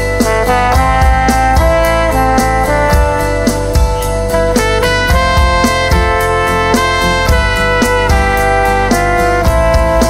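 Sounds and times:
instrumental pop melody: 0.0 - 10.0
steady drum beat: 0.0 - 10.0.

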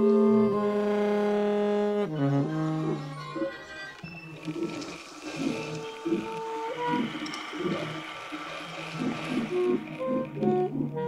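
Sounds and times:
water-like rushing noise: 4.4 - 10.5.

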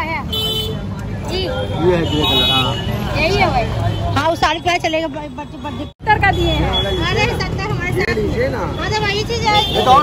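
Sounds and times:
low traffic rumble: 0.0 - 10.0
vehicle horn toots: 1.5 - 3.0.

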